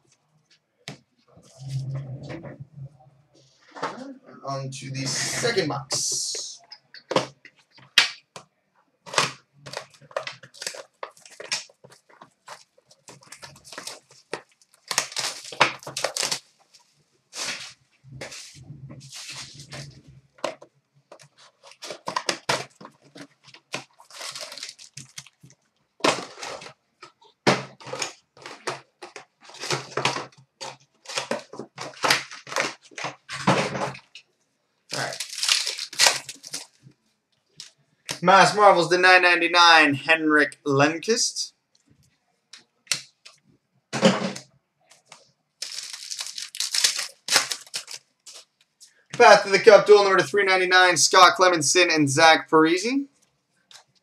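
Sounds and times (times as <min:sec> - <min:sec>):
plastic wrap crinkling and tearing: 0:09.1 - 0:18.4, 0:20.6 - 0:33.4, 0:34.9 - 0:36.8, 0:45.0 - 0:48.6.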